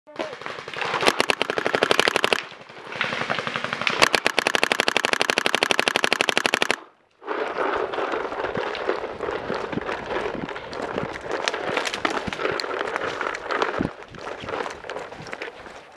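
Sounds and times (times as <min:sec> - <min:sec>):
paintball marker firing rapidly: 0:00.2 - 0:06.9.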